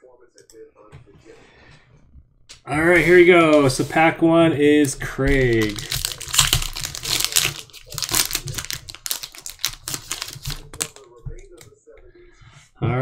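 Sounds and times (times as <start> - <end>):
cards being handled: 2.9 - 11.7
foil wrapper tearing and crinkling: 4.8 - 11.1.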